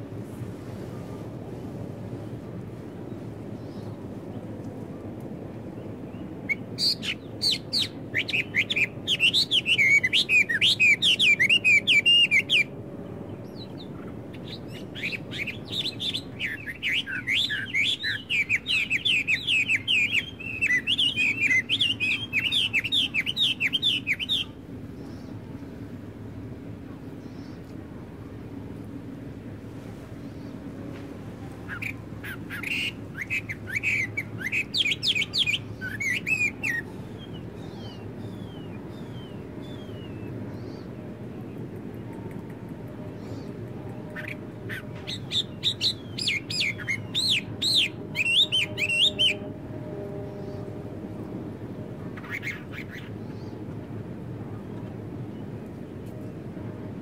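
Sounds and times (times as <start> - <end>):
low background noise: 0.0 - 57.0
songbird chirping: 5.6 - 28.5, 30.0 - 53.7.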